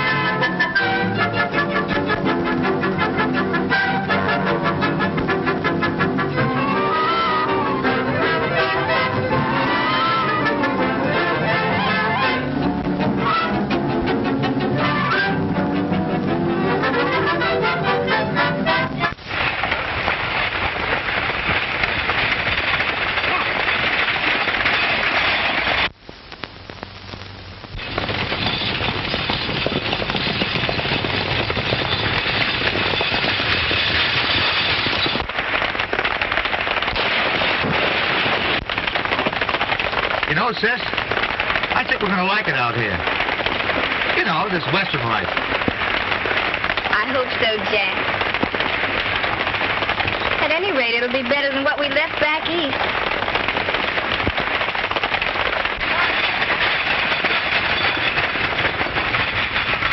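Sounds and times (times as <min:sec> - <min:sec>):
clatter of hooves and wheels: 0:18.6 - 0:26.0, 0:27.7 - 0:59.9.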